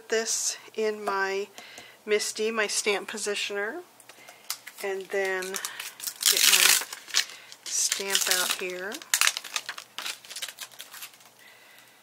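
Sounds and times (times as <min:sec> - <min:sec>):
plastic sheet crinkling: 0:04.4 - 0:11.9.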